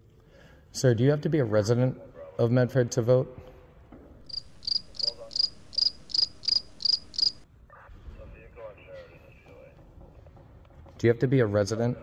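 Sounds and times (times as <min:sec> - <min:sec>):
cricket chirping: 0:04.3 - 0:07.4.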